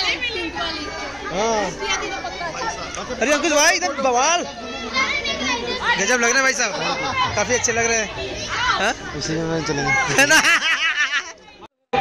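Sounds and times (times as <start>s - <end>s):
children's voices: 0.0s - 12.0s
crowd chatter: 0.0s - 12.0s.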